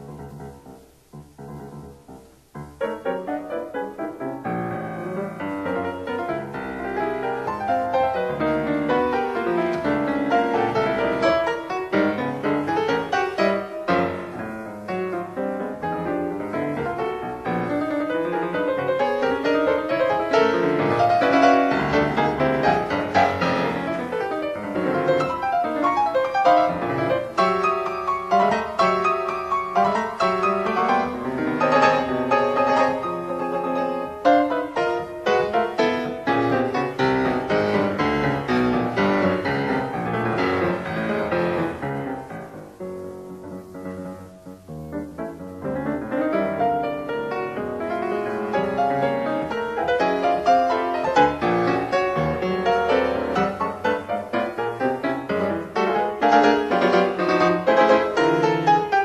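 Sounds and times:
solo piano piece: 0:00.0 - 0:59.0.

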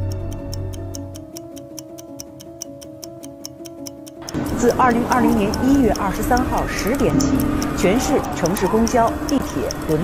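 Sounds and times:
clock-like ticking: 0:00.0 - 0:10.0
soft music: 0:00.0 - 0:10.0.

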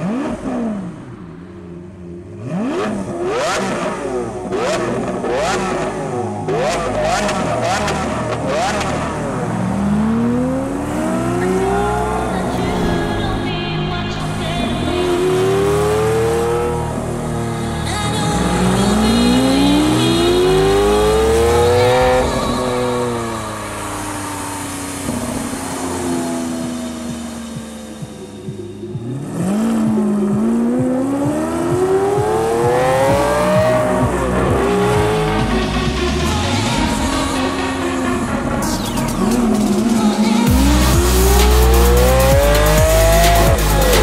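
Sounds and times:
car engine revving: 0:00.0 - 0:44.0.

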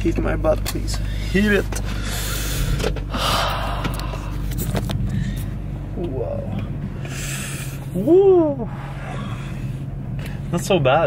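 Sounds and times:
car engine idling: 0:00.0 - 0:11.0
person breathing out hard: 0:01.8 - 0:05.6, 0:07.0 - 0:07.9.

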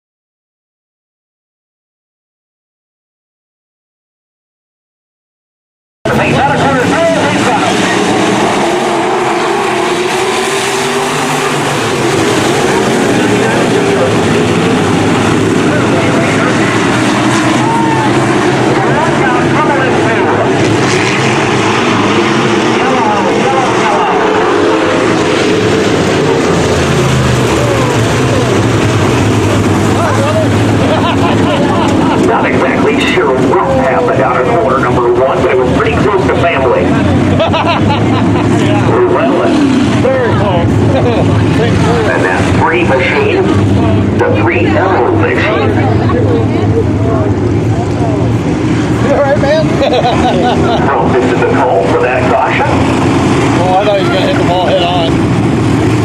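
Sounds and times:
race car engines revving: 0:06.1 - 0:56.0.

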